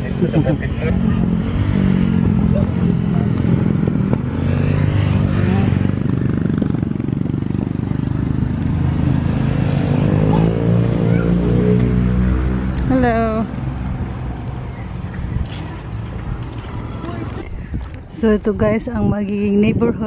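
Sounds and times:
small engine droning: 0.0 - 17.4.

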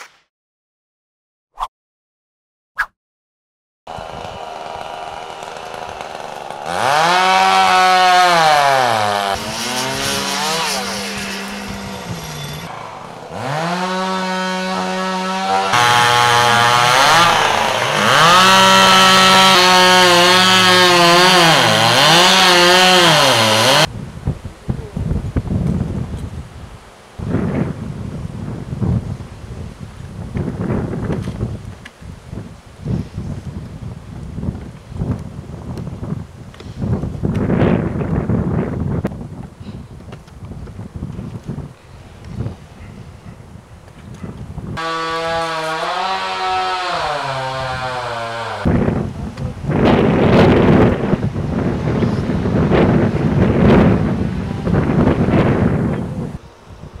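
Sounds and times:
chainsaw revving: 3.9 - 23.9, 44.8 - 48.7
wind noise on microphone: 23.8 - 44.8, 48.6 - 57.0.

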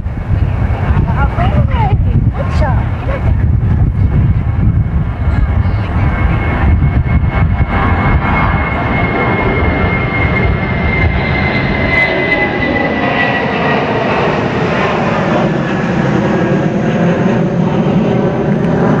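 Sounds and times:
airplane passing overhead: 0.0 - 19.0.

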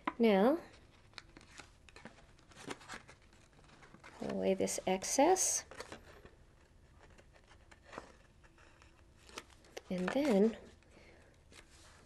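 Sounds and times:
paper being handled: 5.7 - 10.8.

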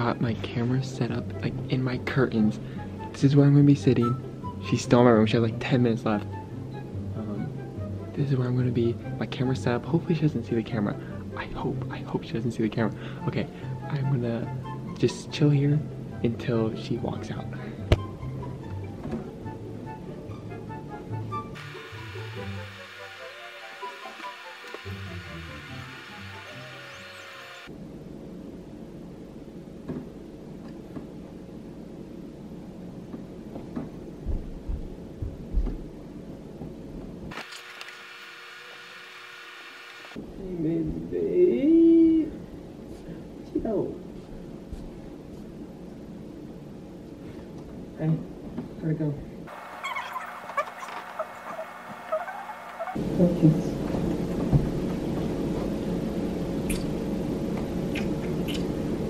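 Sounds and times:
background music: 0.0 - 27.6
low thumps: 17.9 - 18.2
sped-up chirping chatter: 21.6 - 27.7, 49.5 - 53.0.

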